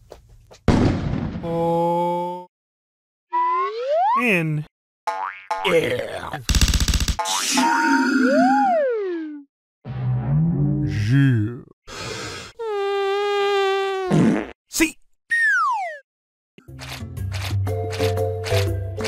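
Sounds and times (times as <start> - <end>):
cartoon pitch glides: 3.3 - 4.3.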